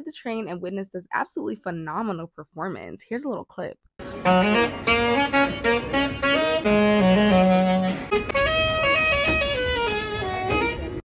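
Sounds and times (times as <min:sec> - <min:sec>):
saxophone melody: 0:04.0 - 0:11.0.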